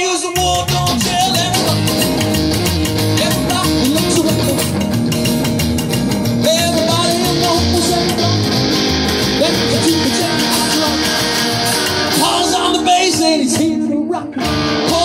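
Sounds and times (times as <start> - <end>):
acoustic guitar: 0.0 - 15.0
electric guitar: 0.0 - 15.0
upright double bass: 0.4 - 13.7.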